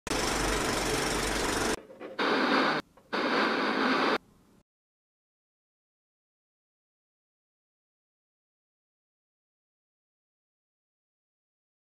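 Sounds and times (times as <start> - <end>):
film projector rattle: 0.1 - 1.8
tv static hiss: 1.6 - 4.2.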